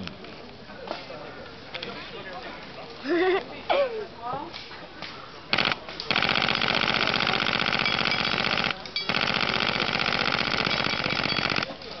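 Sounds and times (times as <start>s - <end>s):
airsoft gun firing full-auto: 5.5s - 11.7s.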